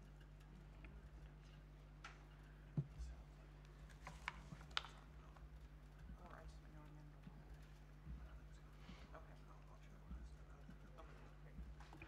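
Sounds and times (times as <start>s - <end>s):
faint indistinct voices: 0.0s - 12.0s
low electrical hum: 0.0s - 12.0s.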